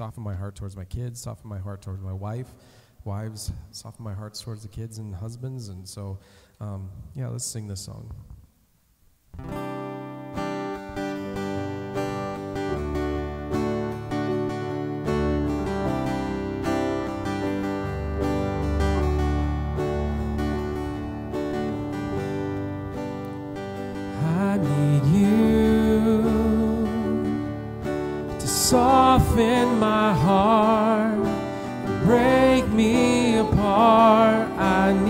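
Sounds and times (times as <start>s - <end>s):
strummed acoustic guitar: 9.4s - 35.0s
low bass notes: 10.9s - 35.0s
man singing: 24.1s - 27.6s, 28.3s - 35.0s
girl singing: 28.4s - 31.3s, 32.0s - 35.0s.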